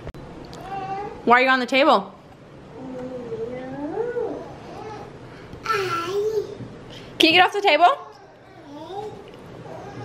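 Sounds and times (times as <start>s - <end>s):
toddler humming: 0.6s - 1.2s, 2.7s - 6.6s, 8.0s - 10.0s.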